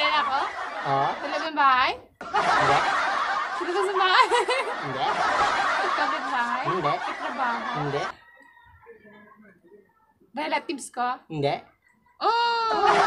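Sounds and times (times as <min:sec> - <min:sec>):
people laughing: 0:00.0 - 0:08.2, 0:12.6 - 0:13.0.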